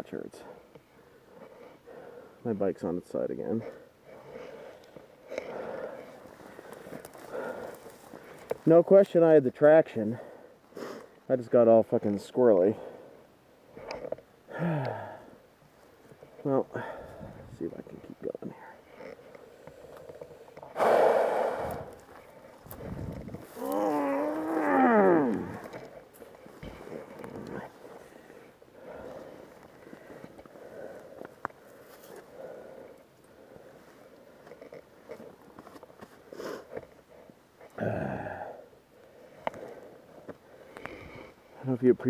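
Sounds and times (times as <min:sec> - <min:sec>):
man breathing hard and grunting: 0:03.6 - 0:08.4, 0:13.9 - 0:15.4, 0:16.7 - 0:17.6, 0:20.7 - 0:34.4, 0:37.7 - 0:41.4
man groaning: 0:14.5 - 0:15.3, 0:23.4 - 0:25.9, 0:37.8 - 0:38.6.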